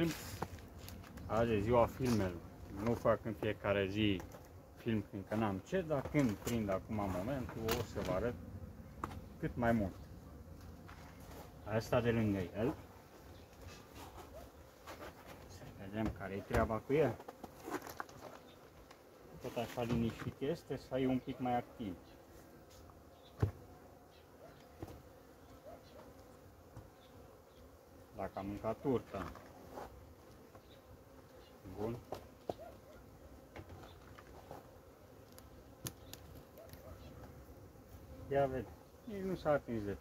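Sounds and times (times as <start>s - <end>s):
soft rustle: 0.0s - 1.3s
bees buzzing: 0.0s - 40.0s
clicks and knocks on hive board: 35.2s - 37.4s.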